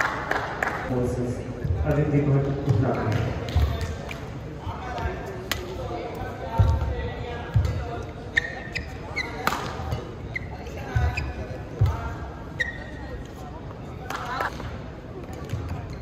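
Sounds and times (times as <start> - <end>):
court shoes squeaking: 4.9 - 16.0.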